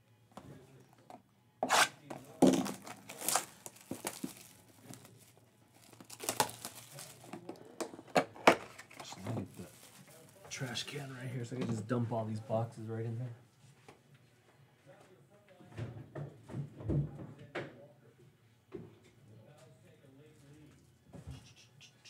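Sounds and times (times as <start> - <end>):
plastic wrapping crinkling: 2.3 - 7.6, 8.7 - 10.9.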